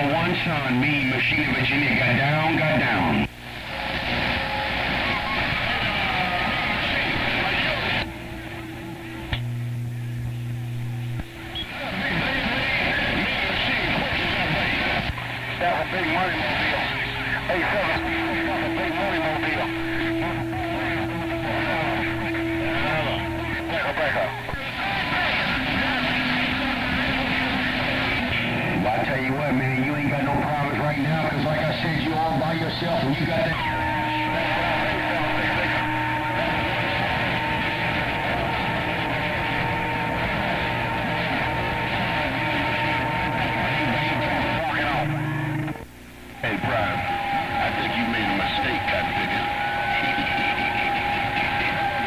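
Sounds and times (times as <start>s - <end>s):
garbled radio voices: 0.0s - 52.0s
radio static: 0.0s - 52.0s
steady radio tones: 0.0s - 52.0s.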